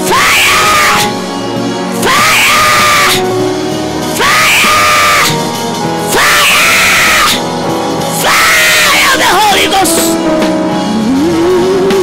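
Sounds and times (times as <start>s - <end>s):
woman screaming: 0.0s - 1.1s, 2.0s - 3.2s, 4.2s - 5.4s, 6.1s - 7.4s, 8.2s - 9.7s
background music: 0.0s - 12.0s.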